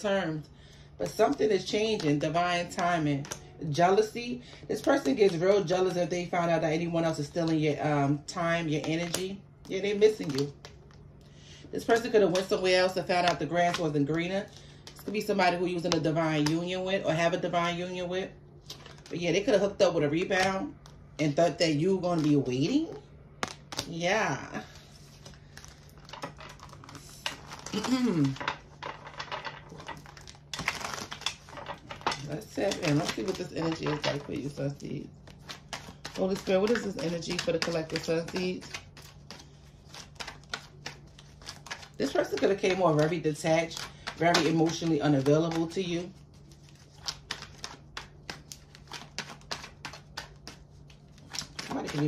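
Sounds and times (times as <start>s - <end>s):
cards being shuffled: 1.0s - 6.0s, 18.6s - 52.0s.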